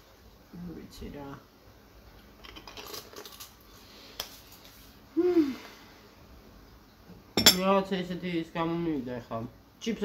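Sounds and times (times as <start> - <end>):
woman humming: 5.1 - 5.8.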